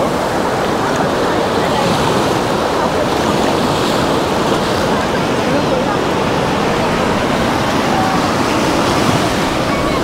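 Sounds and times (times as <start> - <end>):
small waves breaking on sand: 0.0 - 10.0.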